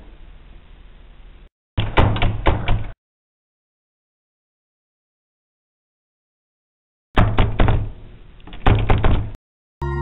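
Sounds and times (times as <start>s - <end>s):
knocking on wooden door: 7.2s - 7.9s, 8.5s - 9.4s.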